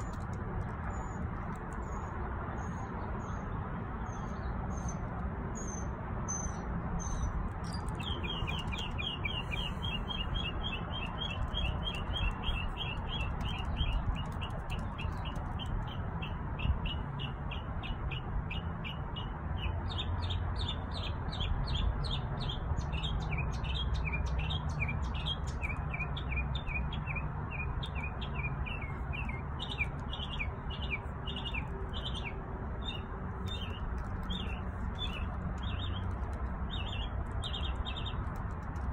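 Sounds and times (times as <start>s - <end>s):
steady low rumble: 6.9s - 16.7s
songbird chirping: 7.1s - 18.0s, 22.9s - 38.3s.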